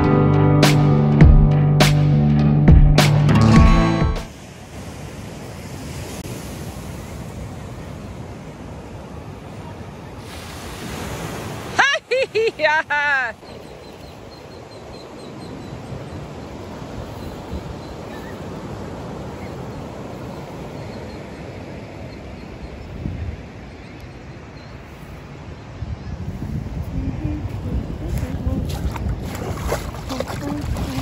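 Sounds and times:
ocean surf on sandy beach: 4.2 - 31.0
wind on microphone: 22.6 - 23.6, 24.8 - 31.0.

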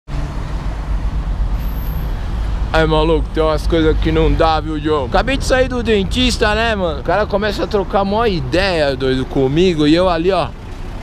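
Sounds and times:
low rumble of street traffic: 0.1 - 11.0.

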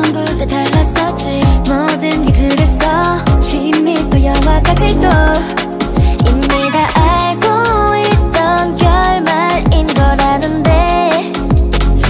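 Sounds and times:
pop music track: 0.0 - 12.0
sliding bass notes: 1.2 - 10.9.

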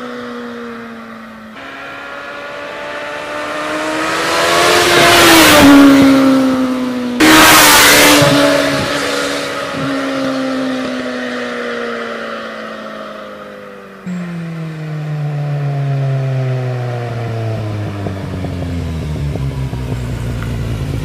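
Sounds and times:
motorcycle exhaust approaching: 1.3 - 21.0.

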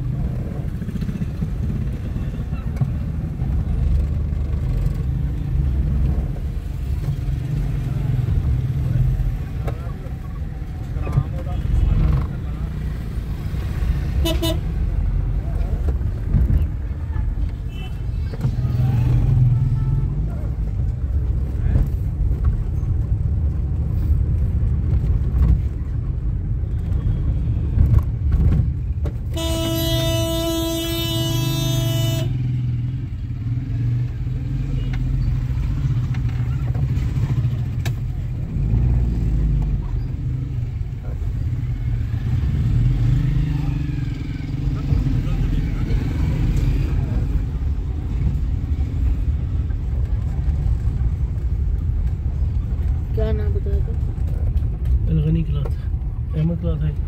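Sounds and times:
traffic rumble and road noise: 0.0 - 57.0
vehicle horn blast: 14.2 - 14.7, 29.3 - 32.5.

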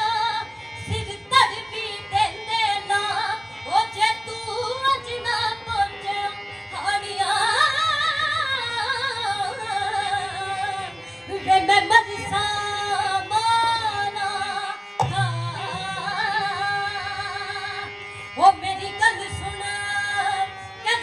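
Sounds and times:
woman singing folk song: 0.0 - 21.0.

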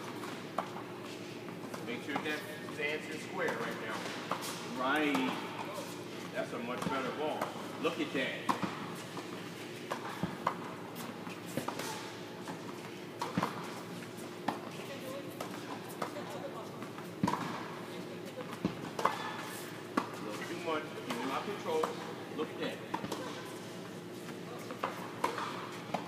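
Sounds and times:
tennis balls bouncing on court: 3.4 - 5.5, 6.7 - 13.8, 14.4 - 22.0, 22.7 - 23.3, 24.6 - 26.0
tennis balls struck with rackets: 3.4 - 5.5, 6.7 - 10.7, 13.2 - 13.7, 17.2 - 17.8, 18.5 - 20.2, 22.9 - 23.4, 24.7 - 26.0.

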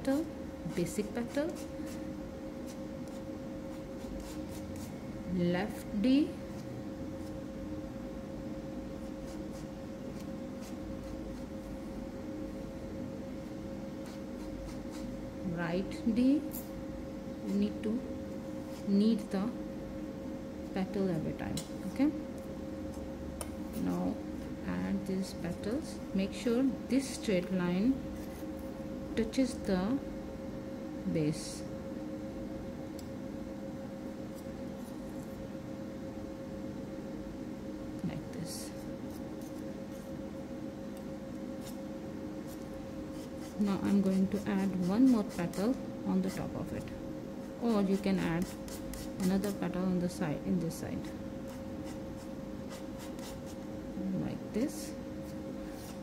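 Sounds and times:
steady hum: 0.0 - 56.0
palette knife scraping paste: 0.8 - 2.0, 2.6 - 4.9, 14.0 - 15.1, 42.4 - 46.5, 47.7 - 49.6, 51.5 - 53.6.

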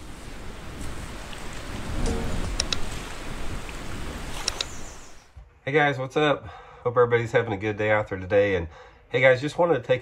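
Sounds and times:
rushing water: 0.0 - 5.4.

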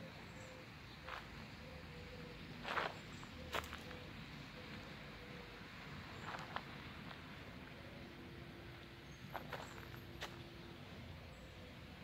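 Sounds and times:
footsteps on park path: 1.0 - 1.4, 2.6 - 4.1, 6.1 - 7.4, 9.2 - 10.7.

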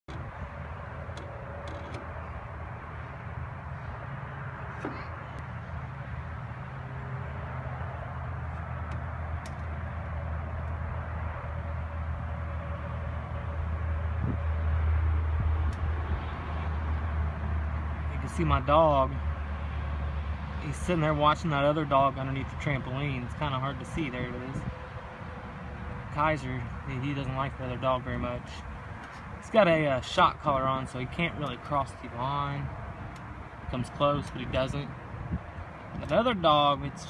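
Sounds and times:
low outdoor rumble: 0.0 - 37.0.

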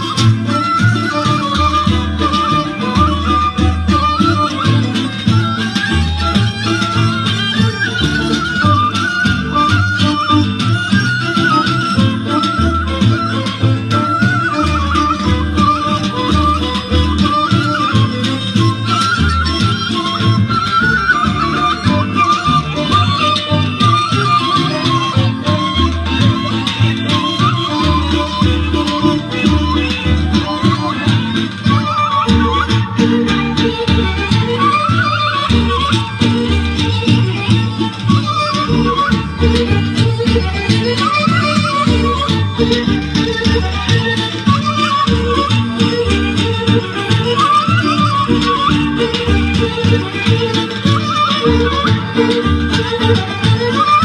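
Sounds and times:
folk dance music: 0.0 - 54.0.

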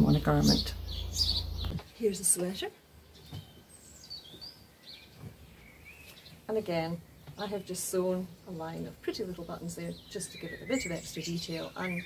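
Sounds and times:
small bird chirping: 0.0 - 12.0.

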